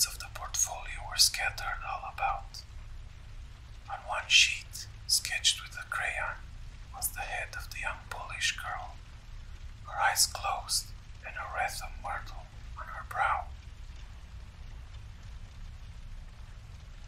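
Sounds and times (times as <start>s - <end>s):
person whispering: 0.0s - 2.7s, 3.8s - 9.0s, 9.8s - 13.6s
low background rumble: 0.0s - 17.0s.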